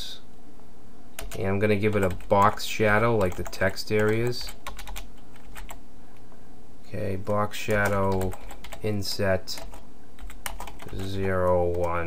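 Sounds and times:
low background hum: 0:00.0 - 0:12.0
keyboard keystrokes: 0:03.2 - 0:05.8, 0:07.7 - 0:08.8, 0:09.6 - 0:12.0.

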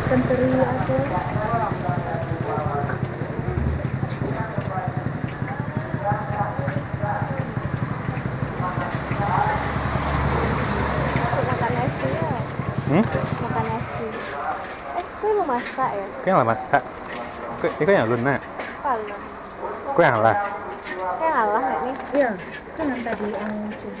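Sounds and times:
indistinct voices: 0:00.0 - 0:24.0.

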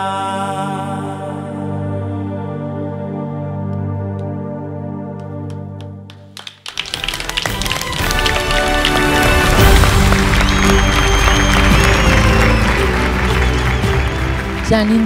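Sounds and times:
audience applauding: 0:05.2 - 0:15.0
loud music: 0:06.8 - 0:15.0.

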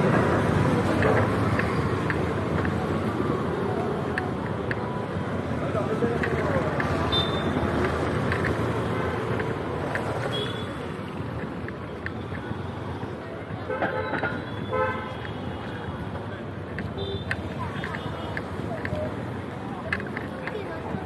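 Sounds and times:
city street traffic: 0:00.0 - 0:21.0
vehicle horn toots: 0:07.1 - 0:07.5, 0:13.7 - 0:15.3.

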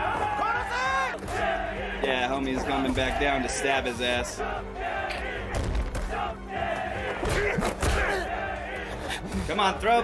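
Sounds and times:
background music: 0:00.0 - 0:10.0
men shouting and jeering: 0:00.0 - 0:10.0.

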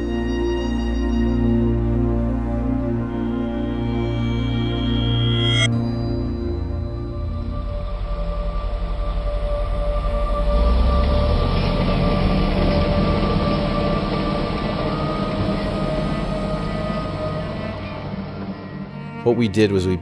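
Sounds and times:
droning ambient music: 0:00.0 - 0:20.0
construction machinery rumbling: 0:07.2 - 0:19.4.

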